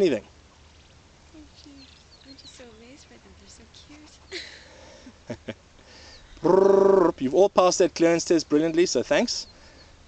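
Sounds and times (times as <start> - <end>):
man humming low: 6.4 - 7.1.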